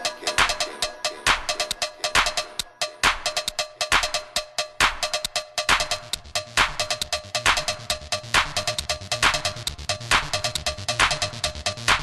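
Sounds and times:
techno track: 0.0s - 12.0s.

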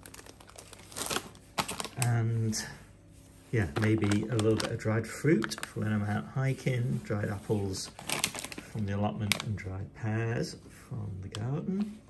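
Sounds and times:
plastic bags crinkling: 0.0s - 2.7s, 3.5s - 9.7s.

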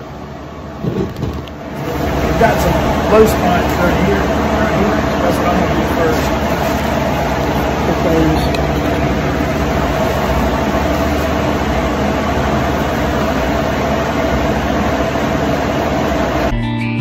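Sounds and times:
constant hum: 0.0s - 16.5s
loud machine noise: 0.0s - 16.5s.

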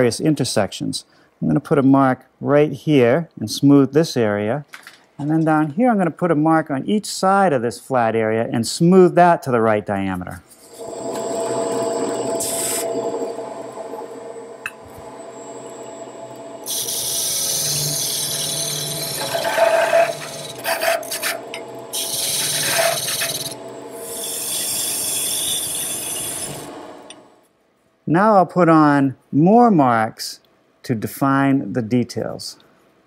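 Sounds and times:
lathe motor hum: 10.6s - 27.4s
chisel scraping spinning wood: 16.6s - 26.8s.

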